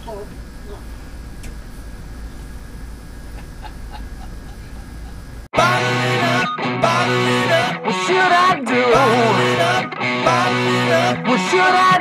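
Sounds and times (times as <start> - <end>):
electric guitar bending notes: 5.6 - 12.0
rock band playing: 5.6 - 12.0.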